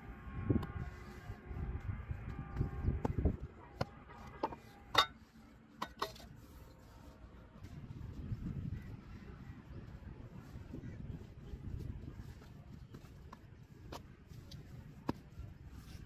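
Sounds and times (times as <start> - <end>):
metal mould clinking: 4.4 - 5.2.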